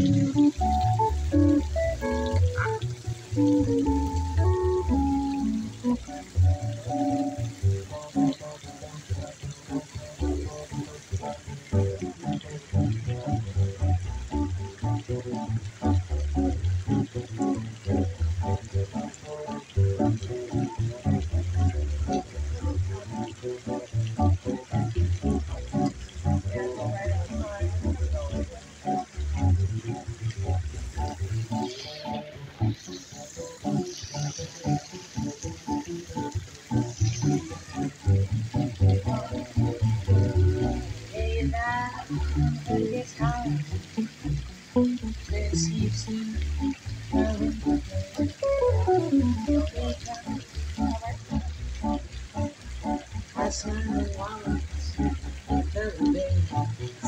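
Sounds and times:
plucked upright bass: 0:00.0 - 0:57.0.

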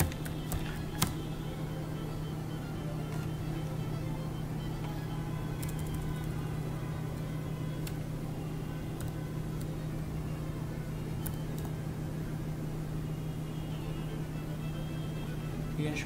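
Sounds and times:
keyboard and mouse clicks: 0:00.0 - 0:01.2, 0:05.6 - 0:06.3, 0:07.8 - 0:08.0, 0:08.9 - 0:09.7, 0:11.2 - 0:11.8
steady low hum: 0:00.0 - 0:16.0.

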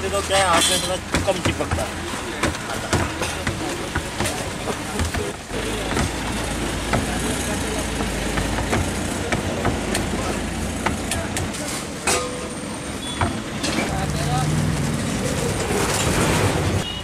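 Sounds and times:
traffic rumble: 0:00.0 - 0:17.0.

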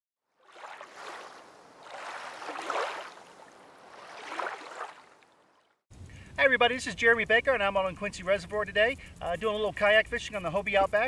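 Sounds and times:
water washing in surges: 0:00.4 - 0:05.7.

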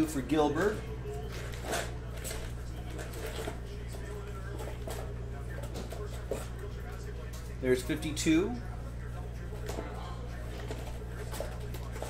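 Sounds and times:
card packs and paper rustling: 0:00.0 - 0:06.5
low electrical hum: 0:00.0 - 0:12.0.

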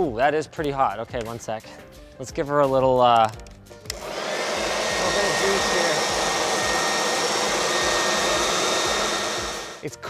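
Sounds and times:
electric leaf blower whining: 0:03.9 - 0:09.8.

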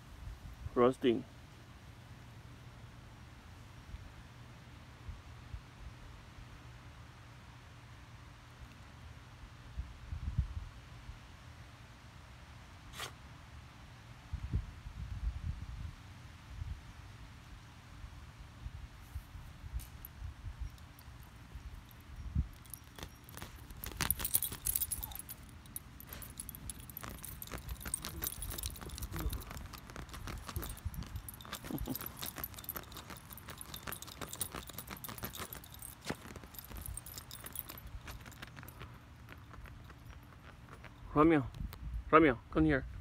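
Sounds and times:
dog collar tags jingling: 0:19.8 - 0:41.7
knocks and rustling from handling: 0:22.6 - 0:41.0.

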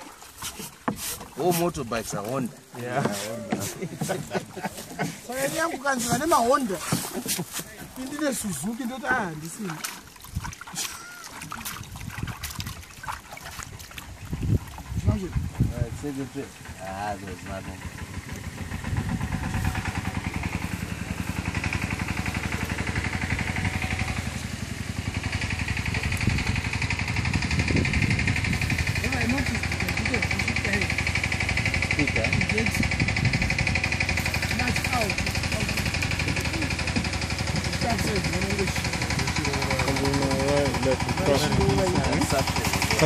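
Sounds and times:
small engine running: 0:15.0 - 0:43.0.

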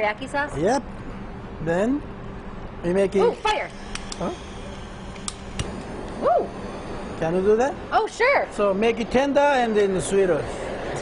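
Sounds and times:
blowtorch igniter clicks: 0:03.9 - 0:04.3, 0:05.1 - 0:06.2.

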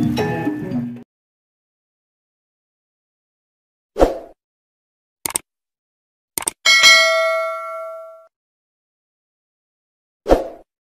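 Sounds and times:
bright bell ding: 0:06.7 - 0:08.3.

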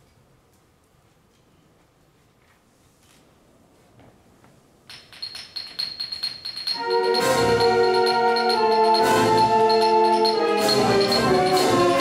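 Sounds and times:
light metallic percussion strikes: 0:04.9 - 0:12.0
high ringing note: 0:05.2 - 0:12.0.

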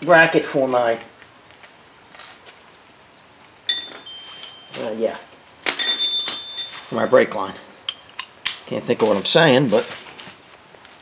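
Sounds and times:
steel tool clinking against metal: 0:03.7 - 0:04.8, 0:05.6 - 0:07.2, 0:07.8 - 0:08.8.

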